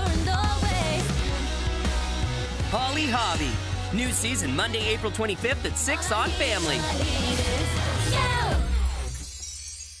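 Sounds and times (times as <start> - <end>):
pop backing music: 0.0 - 9.4.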